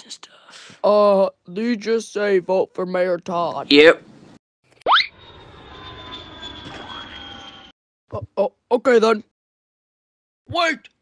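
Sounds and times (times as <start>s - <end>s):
airplane engine drone: 5.1s - 7.7s
high engine whine: 5.1s - 7.7s.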